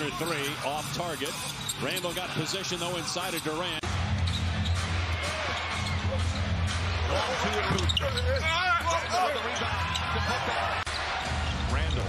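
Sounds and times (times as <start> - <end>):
low bass of arena music: 3.8 - 8.4.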